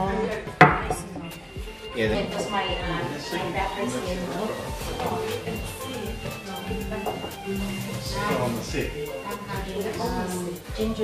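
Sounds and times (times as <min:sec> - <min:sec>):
mug clunk on wooden table: 0:00.6 - 0:01.0.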